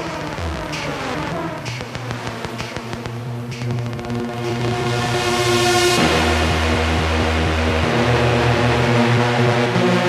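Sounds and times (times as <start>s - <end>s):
techno music with synth bass: 0.0s - 10.0s.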